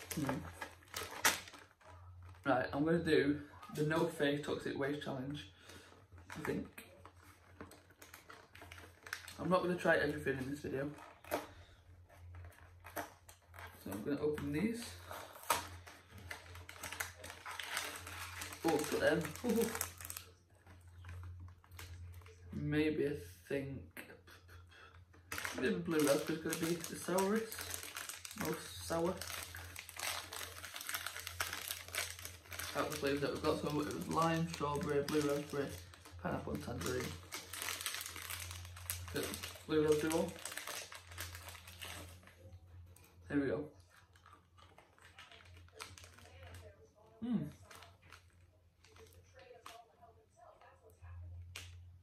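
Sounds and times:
cardboard packet being torn open: 0.0 - 2.5, 6.2 - 22.4, 25.3 - 42.4, 44.0 - 46.7, 47.4 - 49.8
plastic candy wrapper crinkling: 0.0 - 22.6, 24.9 - 51.9.

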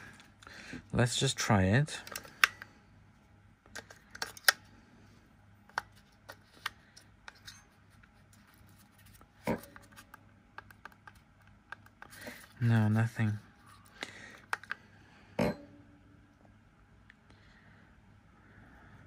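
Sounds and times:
batteries clicking into compartment: 2.0 - 2.7, 3.6 - 4.7, 14.0 - 14.8.

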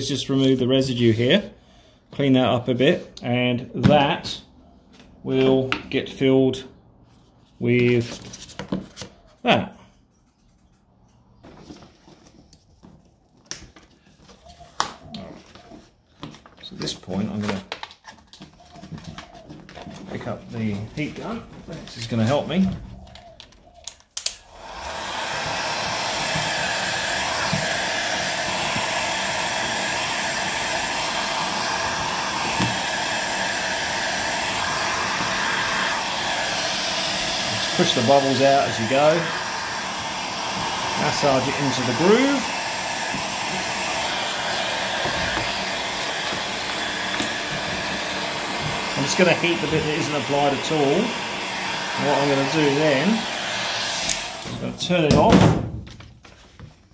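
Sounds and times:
heat gun fan blowing: 24.2 - 55.3
hands rustling vinyl decal: 56.1 - 56.9.

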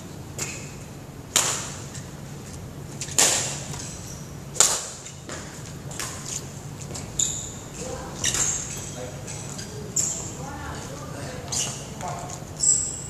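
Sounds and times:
badminton racket hitting shuttlecock: 3.0 - 3.9, 4.6 - 5.1.

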